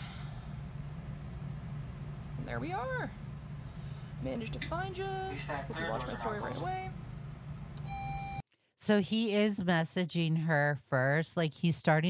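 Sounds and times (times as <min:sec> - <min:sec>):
steady low hum: 0:00.0 - 0:08.4
woman speaking: 0:02.4 - 0:03.2, 0:04.2 - 0:07.0, 0:08.8 - 0:12.0
short electronic beep: 0:07.8 - 0:08.4.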